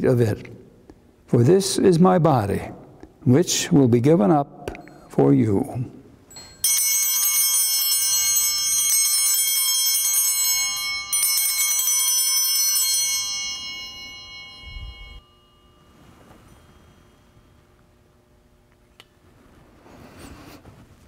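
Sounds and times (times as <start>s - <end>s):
small bells pealing: 4.8s - 18.1s.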